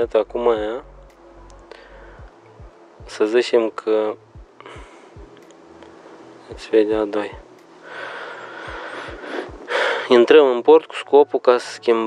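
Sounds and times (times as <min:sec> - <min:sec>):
man speaking: 0:00.0 - 0:00.9, 0:03.0 - 0:04.2, 0:06.5 - 0:07.5, 0:09.5 - 0:12.0
soft low thumps: 0:00.0 - 0:03.3, 0:04.3 - 0:05.4, 0:06.5 - 0:07.7, 0:08.6 - 0:10.1
faint steady hiss: 0:00.0 - 0:12.0
man drawing sharp breath: 0:07.8 - 0:10.1.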